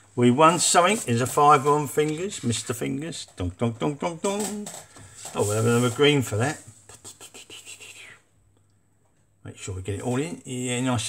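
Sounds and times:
paper rustling and tapping: 0.5s - 7.2s.

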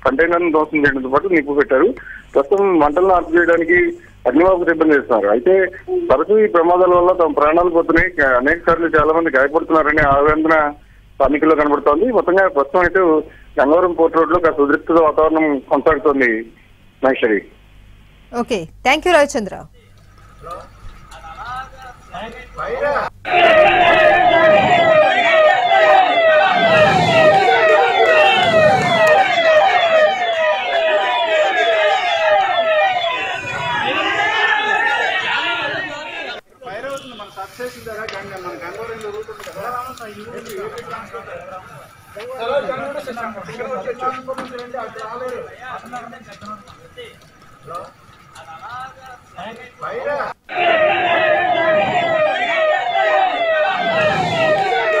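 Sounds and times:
emergency vehicle siren: 20.4s - 36.8s, 50.5s - 55.0s
crowd voices: 21.6s - 47.6s, 49.8s - 55.0s.

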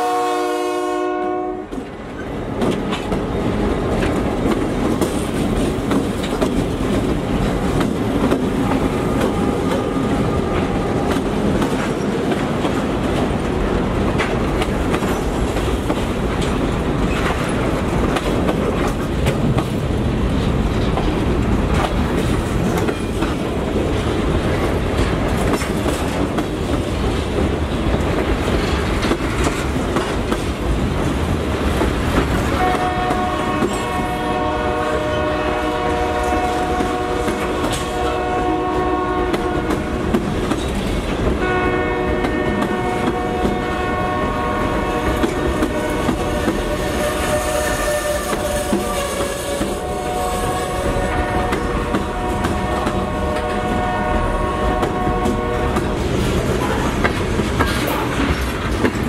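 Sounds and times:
locomotive horn chord: 0.0s - 1.8s, 32.6s - 39.9s, 41.4s - 55.8s
diesel locomotives rolling by: 0.0s - 59.0s
freight cars clattering over rail joints: 55.7s - 59.0s.

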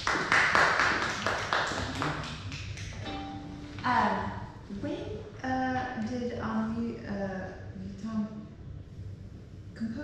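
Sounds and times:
small group clapping: 0.0s - 3.2s.

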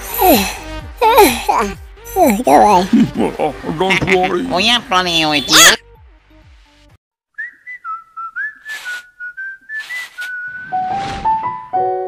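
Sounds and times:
person whistling a tune: 7.3s - 10.8s
short bursts of hiss: 8.7s - 9.1s, 9.8s - 10.4s.

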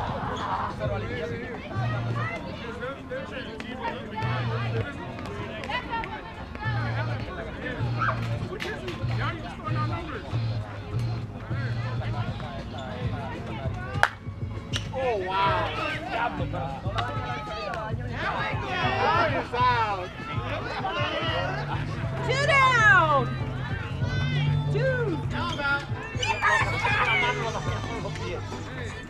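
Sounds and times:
people talking and calling: 0.0s - 29.0s.

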